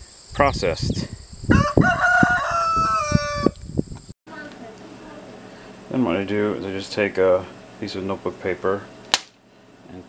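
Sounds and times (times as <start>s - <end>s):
rooster crowing: 1.5s - 3.6s.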